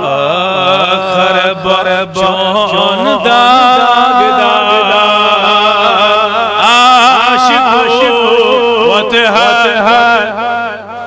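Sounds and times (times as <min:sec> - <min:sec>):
man chanting through microphone: 0:00.0 - 0:11.0.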